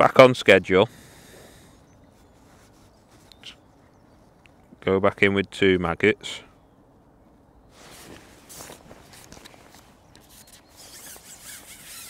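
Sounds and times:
quiet outdoor background: 0.0s - 12.0s.

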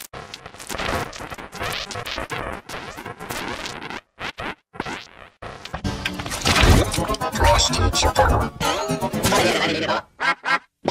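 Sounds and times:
scratchy logo sound effects: 0.2s - 9.8s.

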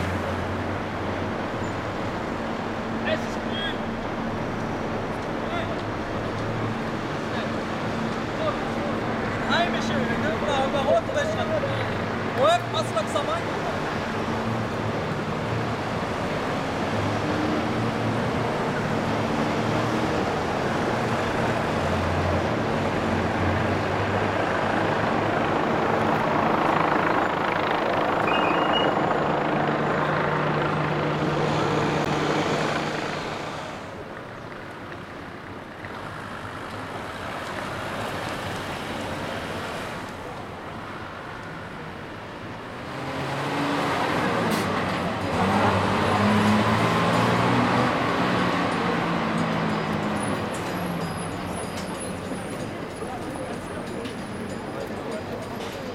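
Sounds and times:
tyre and road noise: 0.0s - 55.9s
vehicle engines running: 0.0s - 55.9s.

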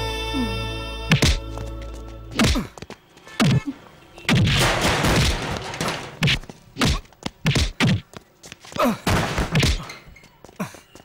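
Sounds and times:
punch thuds and whacks: 1.1s - 1.4s, 2.4s - 2.7s, 3.4s - 3.7s, 4.3s - 5.6s, 6.2s - 8.0s, 9.0s - 9.8s.

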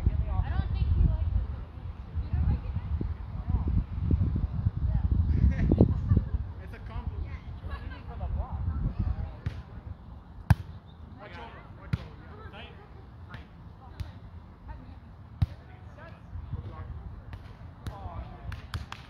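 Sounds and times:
volleyball being struck: 10.5s - 10.8s.

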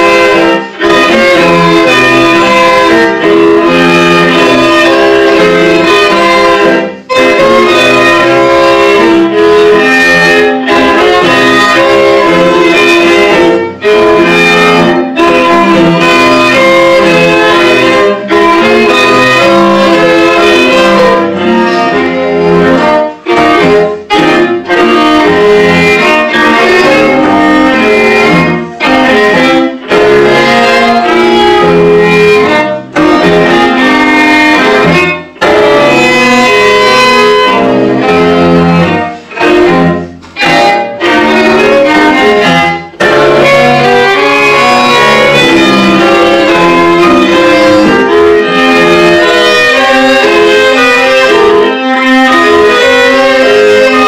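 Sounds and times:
string quartet playing chords: 0.0s - 54.0s.

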